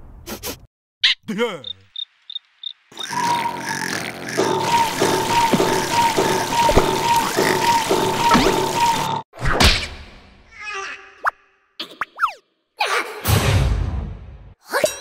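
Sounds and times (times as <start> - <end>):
cricket chirps: 1.6 - 3.8
cartoon snoring and mumbling: 3.0 - 4.8
cartoon vocal glide: 3.0 - 8.0.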